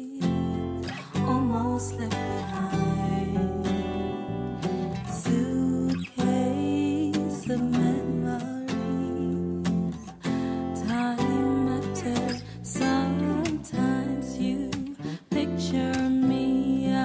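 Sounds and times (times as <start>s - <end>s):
person singing: 0.0s - 17.0s
strummed acoustic guitar: 0.0s - 17.0s.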